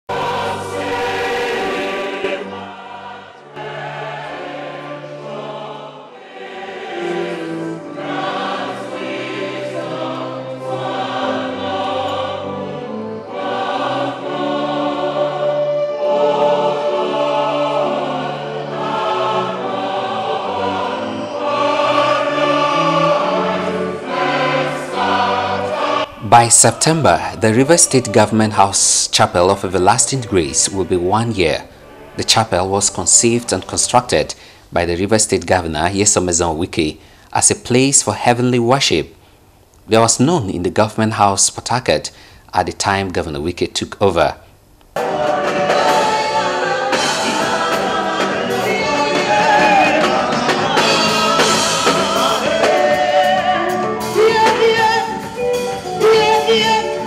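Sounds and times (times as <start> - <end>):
choir singing sacred music: 0.0 - 34.4, 45.0 - 57.0.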